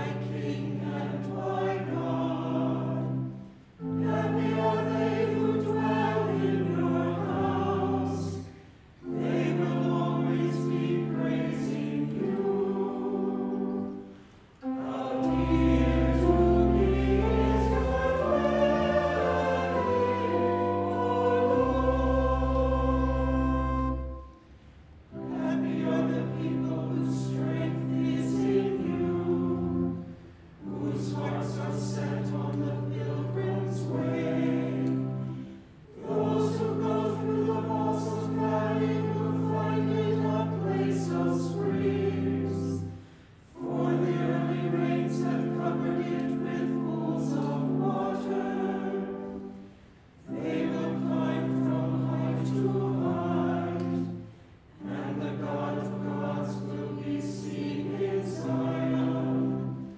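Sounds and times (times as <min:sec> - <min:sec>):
church choir singing: 0:00.0 - 0:59.9.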